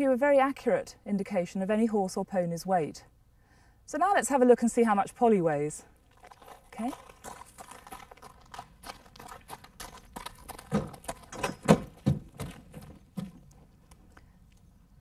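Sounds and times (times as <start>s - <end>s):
hooves crunching on gravel: 6.0s - 14.0s
hoof steps on rubber mat: 6.1s - 13.7s.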